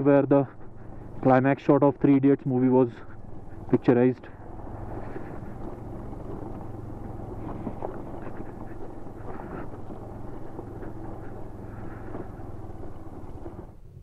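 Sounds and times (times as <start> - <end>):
motorcycle engine running: 0.0 - 14.0.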